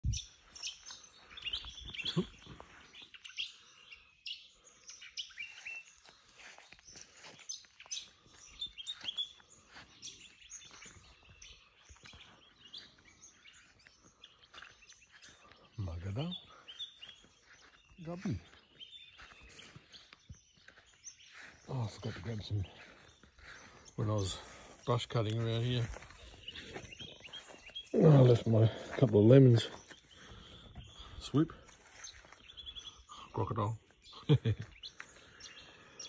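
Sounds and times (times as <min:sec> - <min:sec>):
small birds chirping: 0:00.0 - 0:36.0.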